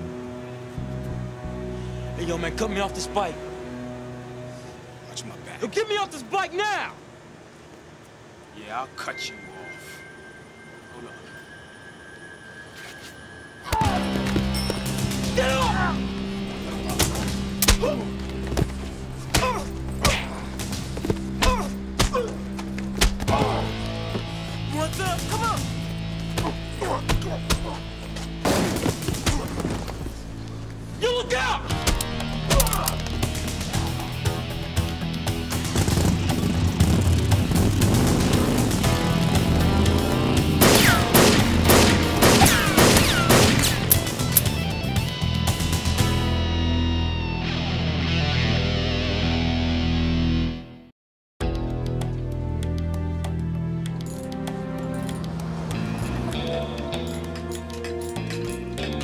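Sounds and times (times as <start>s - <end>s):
people shouting: 13.6s - 14.2s, 15.3s - 16.1s, 23.2s - 23.8s, 33.7s - 34.3s
action soundtrack music: 13.6s - 30.4s, 31.0s - 49.6s, 51.4s - 59.0s
fight sounds: 40.5s - 44.1s
gunfire bursts: 40.6s - 43.9s.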